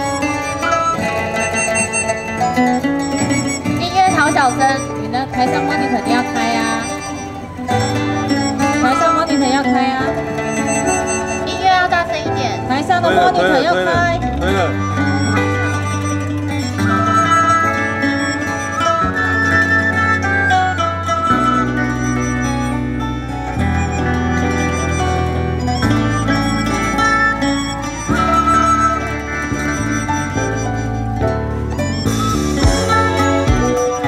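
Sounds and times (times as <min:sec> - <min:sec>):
traditional string ensemble music: 0:00.0 - 0:34.0.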